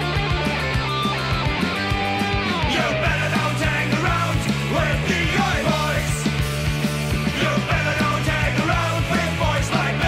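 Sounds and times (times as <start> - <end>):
bass guitar: 0.0 - 10.0
electric guitar: 0.0 - 10.0
steady drum beat: 0.0 - 10.0.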